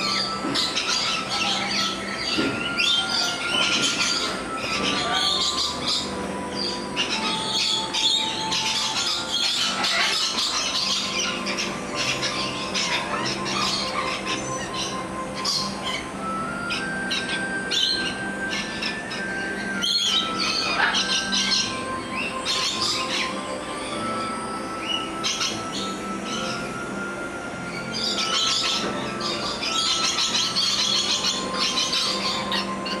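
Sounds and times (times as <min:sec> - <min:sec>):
faint background music: 0:00.0 - 0:33.0
lorikeets chattering and squawking: 0:00.0 - 0:33.0.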